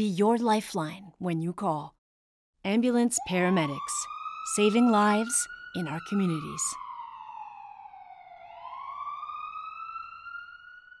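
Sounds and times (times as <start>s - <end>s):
emergency siren wail: 3.0s - 11.0s.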